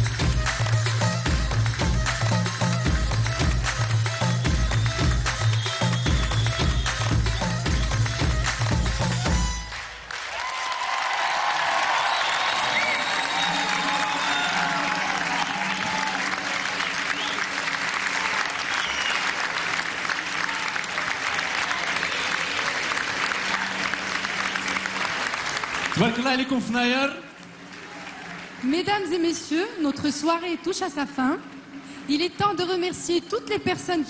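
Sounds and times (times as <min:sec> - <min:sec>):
music with thumping beat: 0:00.0 - 0:09.8
audience applauding: 0:00.0 - 0:29.4.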